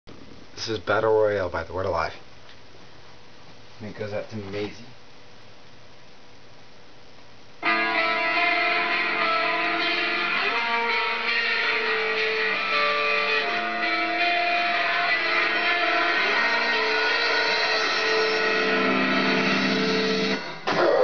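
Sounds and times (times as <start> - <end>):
electric guitars playing sustained chords: 7.6 - 20.7.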